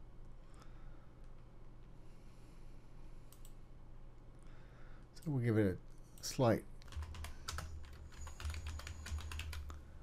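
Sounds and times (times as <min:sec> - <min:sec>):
computer keyboard typing: 0:06.8 - 0:09.8.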